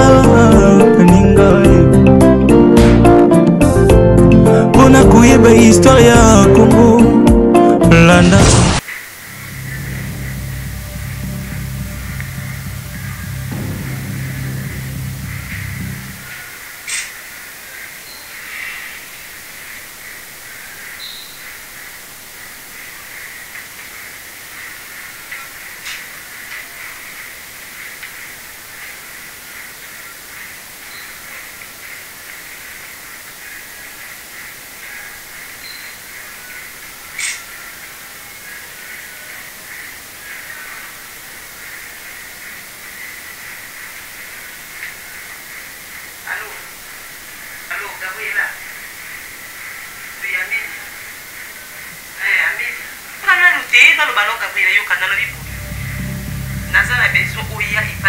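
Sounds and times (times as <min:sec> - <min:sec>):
high hiss with crackle: 0:08.2 - 0:58.0.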